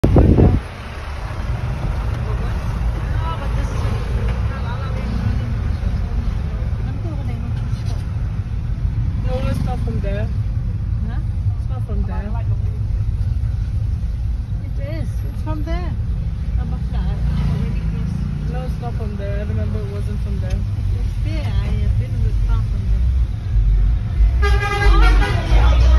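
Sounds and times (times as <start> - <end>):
engine and road rumble: 0.0 - 25.9.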